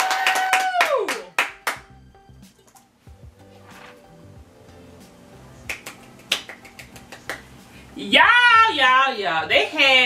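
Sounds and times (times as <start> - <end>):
hands clapping: 0.0 - 1.9, 5.6 - 7.5.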